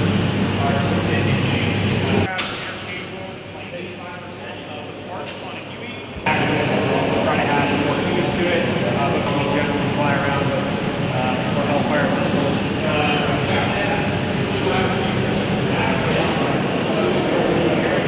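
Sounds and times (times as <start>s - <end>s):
people talking: 0.0s - 18.0s
steady low hum: 0.0s - 18.0s.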